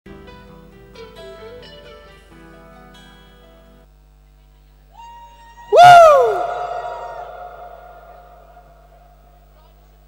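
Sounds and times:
man whooping into echoing microphone: 5.0 - 9.2.

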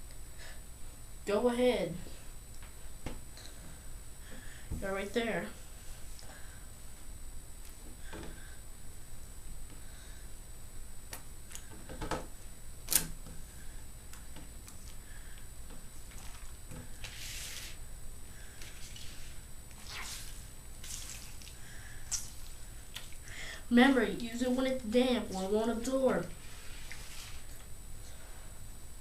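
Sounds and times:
steady low hum: 0.0 - 29.0
wet cloth swishing: 18.8 - 22.5.

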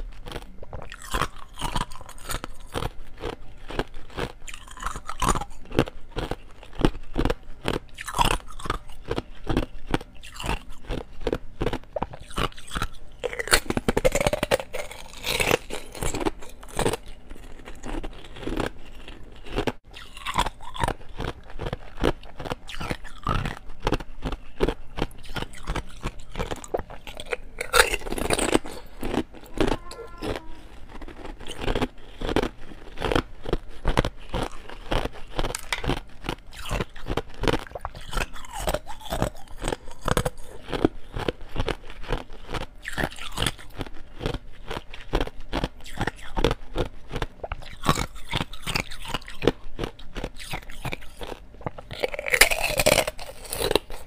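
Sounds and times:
person chewing crunchy ice: 0.0 - 54.0.

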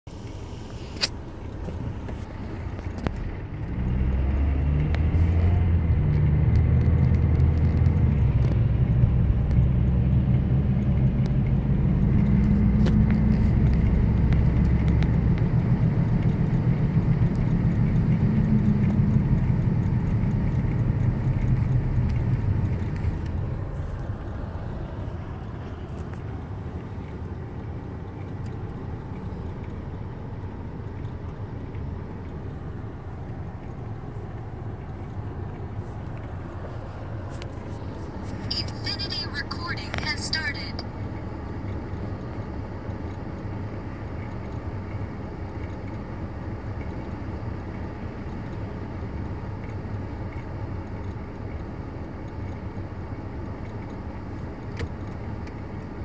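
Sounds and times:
car engine hum from inside: 0.1 - 56.0.

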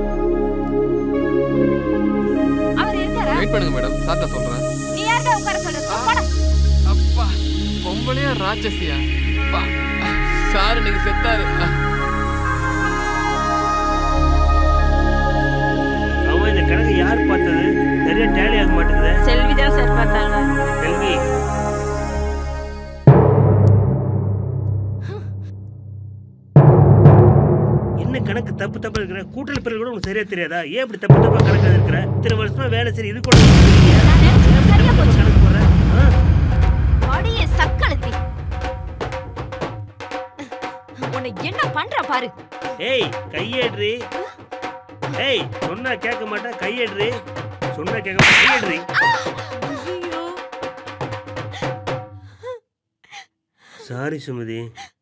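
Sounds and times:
background music: 0.0 - 30.2, 31.1 - 52.4
low rumbling drum hit: 23.1 - 29.8, 31.1 - 39.9
person exclaiming: 48.4 - 50.3.

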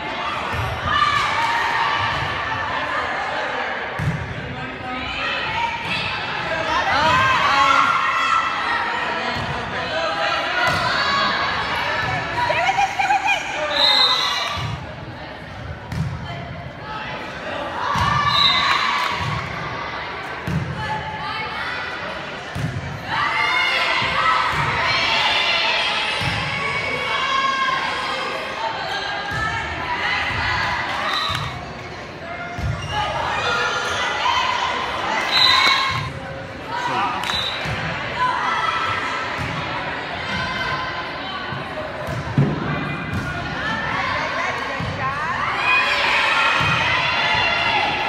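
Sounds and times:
murmur of voices in a gym: 0.0 - 48.0
volleyball thump: 42.0 - 43.4.

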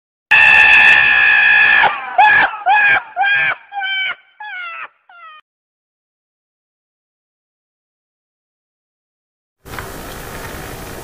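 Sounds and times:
donkey braying: 0.4 - 5.4.

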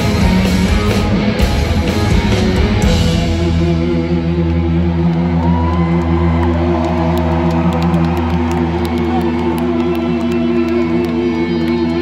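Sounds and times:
rock band sustained chord: 0.0 - 6.6.

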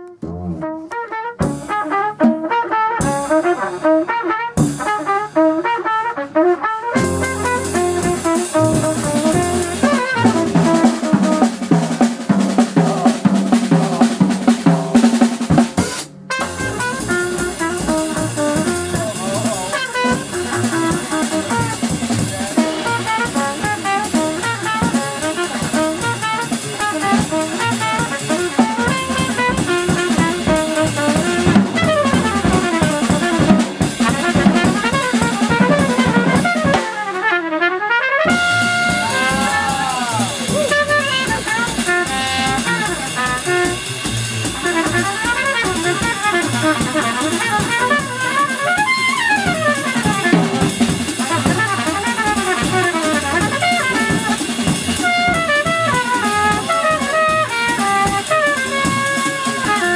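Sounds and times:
double bass: 0.0 - 5.8, 6.9 - 36.8, 38.3 - 59.9
trumpet melody: 0.0 - 59.9
drum kit with cymbals: 0.1 - 59.9.

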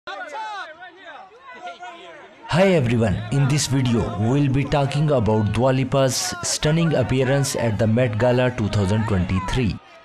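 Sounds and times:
people talking: 2.5 - 9.8.

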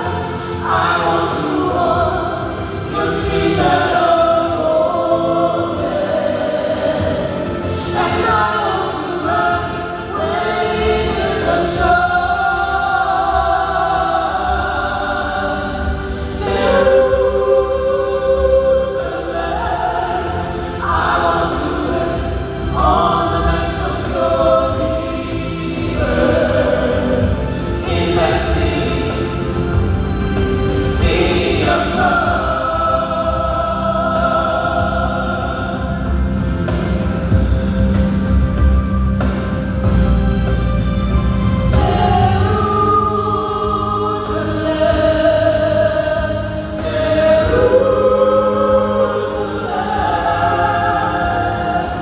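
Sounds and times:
gospel group singing in harmony: 0.0 - 52.0.

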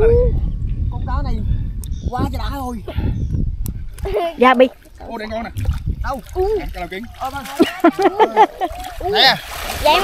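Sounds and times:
water splashing: 4.0 - 10.0
men exclaiming: 7.6 - 10.0.

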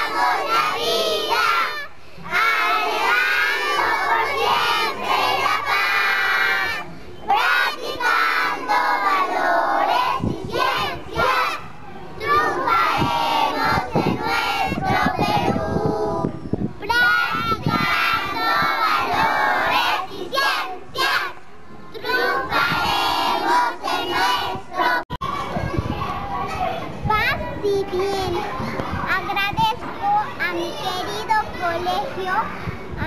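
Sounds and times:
girls singing loudly: 0.0 - 21.4, 22.0 - 25.1.

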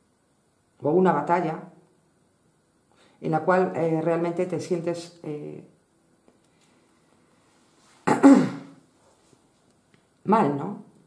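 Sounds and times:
person clearing throat: 8.0 - 8.8.

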